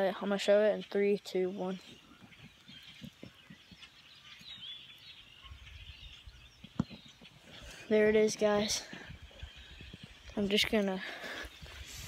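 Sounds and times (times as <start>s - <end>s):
distant bird calls: 0.0s - 12.0s.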